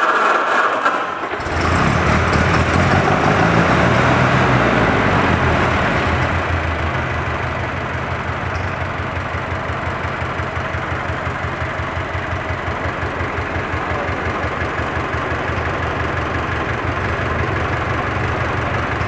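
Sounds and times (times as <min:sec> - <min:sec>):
truck engine idling: 0:01.2 - 0:19.0.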